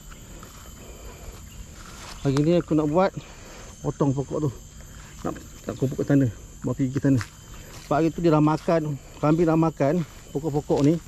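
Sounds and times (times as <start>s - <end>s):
high-pitched insect chorus: 0.0s - 11.0s.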